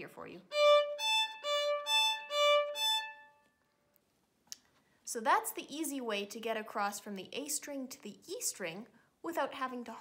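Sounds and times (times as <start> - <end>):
solo violin bowed notes: 0.5 - 3.6.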